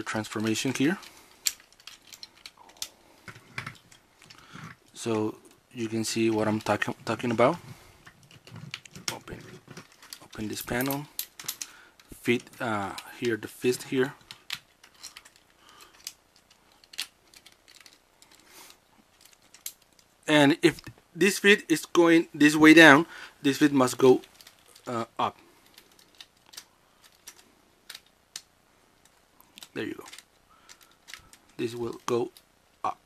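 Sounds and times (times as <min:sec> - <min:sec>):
plastic toy parts clicking: 0:01.0 - 0:04.7, 0:14.2 - 0:20.1, 0:25.7 - 0:32.5.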